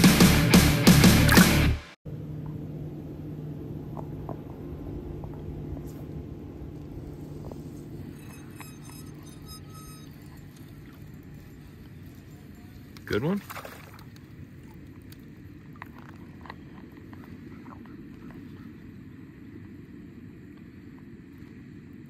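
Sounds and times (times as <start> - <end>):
heavy rock music: 0.0 - 2.0
steady low hum: 0.0 - 22.0
outdoor noise on a boat: 2.1 - 22.0.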